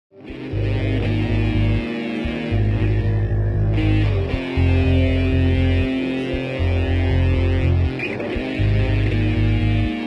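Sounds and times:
guitar: 0.1 - 10.0
pulsing bass line: 0.3 - 10.0.

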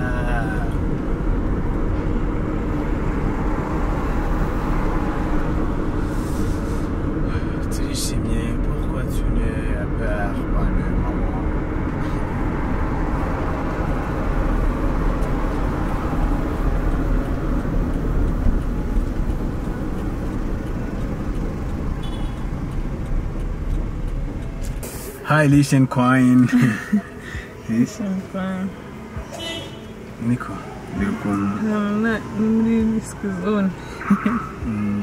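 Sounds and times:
car road and engine noise: 0.0 - 35.0.

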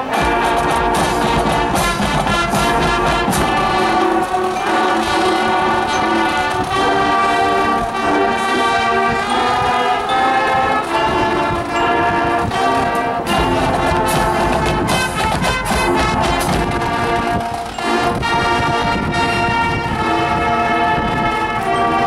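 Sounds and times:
brass section playing chords: 0.0 - 22.0.

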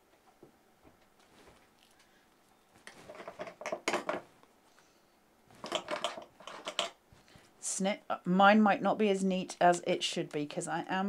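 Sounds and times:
craft tools clicking: 5.6 - 7.0.

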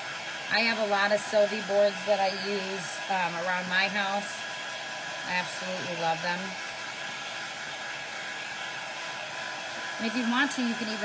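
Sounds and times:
heat tool blowing hot air: 0.0 - 11.0.

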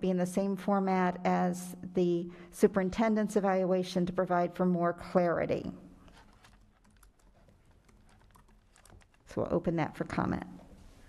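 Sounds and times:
typing on laptop keyboard: 6.1 - 9.6.

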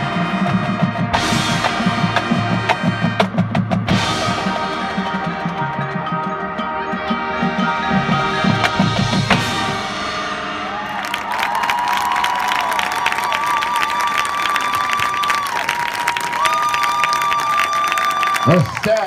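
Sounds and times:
marching band final chord: 0.0 - 11.8
drum hits: 8.1 - 10.4
crowd applauding and cheering: 10.5 - 19.0.

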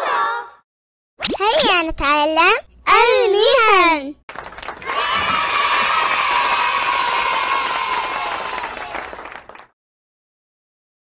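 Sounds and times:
children cheering: 4.3 - 9.7.

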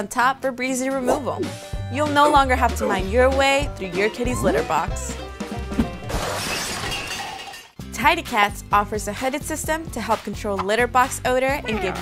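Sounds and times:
music with steady beat: 1.1 - 6.0
shattering crash effect: 5.8 - 7.6.

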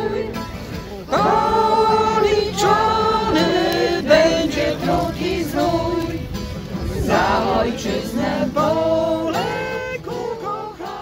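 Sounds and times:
a cappella choir singing: 0.0 - 11.0.

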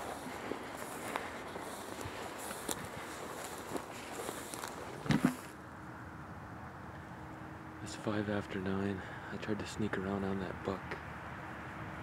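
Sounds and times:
rustling of brush and clothing: 0.0 - 5.6
footsteps in frosty grass: 0.0 - 5.8.

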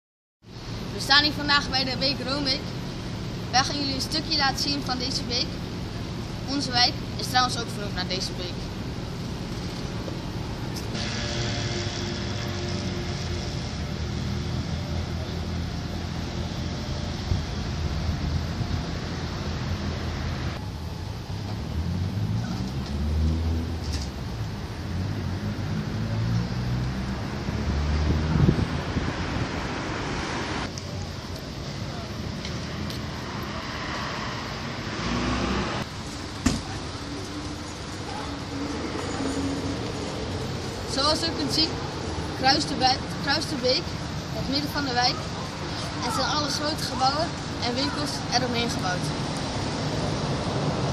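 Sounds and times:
rumble of cars: 0.4 - 50.9
faint low engine hum: 0.5 - 27.5
traffic hiss: 0.5 - 50.9.

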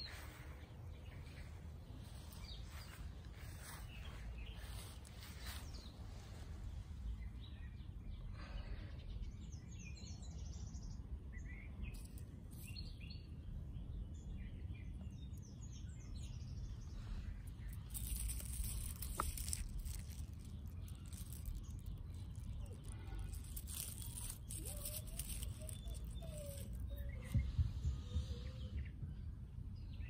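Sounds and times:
rustling noise: 0.0 - 7.1, 11.9 - 12.9, 16.8 - 28.4
birds chirping: 0.0 - 30.0.

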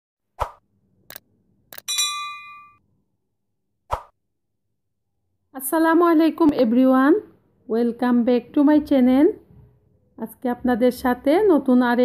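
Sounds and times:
ringing ding: 1.9 - 2.8
pop sound effect: 3.9 - 4.1.

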